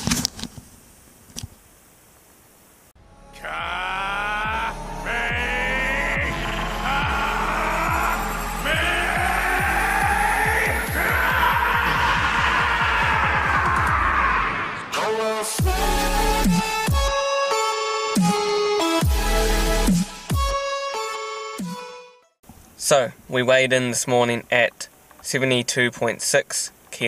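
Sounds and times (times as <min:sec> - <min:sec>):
man shouting drawn-out syllables: 0:03.3 - 0:16.0.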